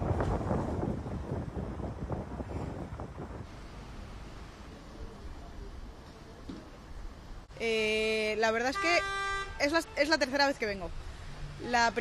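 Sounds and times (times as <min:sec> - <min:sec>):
wind buffeting microphone: 0:00.0 - 0:03.6.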